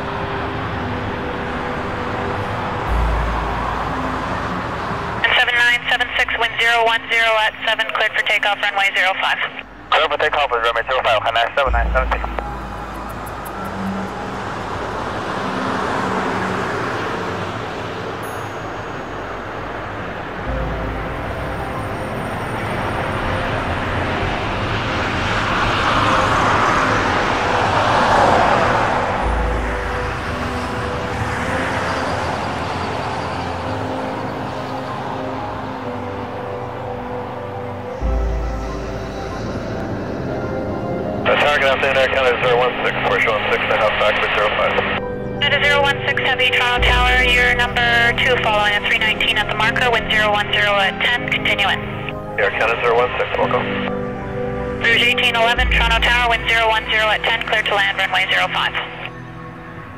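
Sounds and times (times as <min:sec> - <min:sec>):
jet engines at takeoff thrust: 0:00.0 - 0:18.2.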